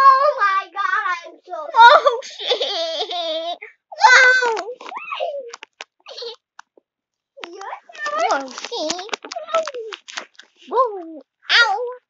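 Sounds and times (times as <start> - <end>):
girl squealing and calling: 3.9 - 6.3.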